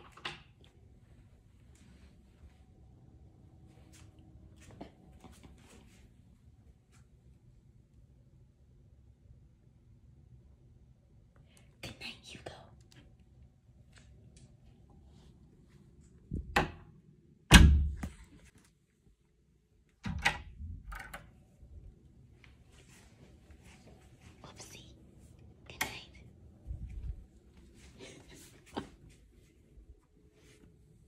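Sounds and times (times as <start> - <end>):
door thumps: 17.5 - 18.2.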